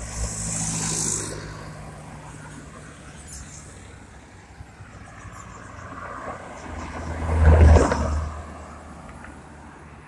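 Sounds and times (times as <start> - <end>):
distant traffic: 0.0 - 10.0
car driving past: 5.2 - 9.4.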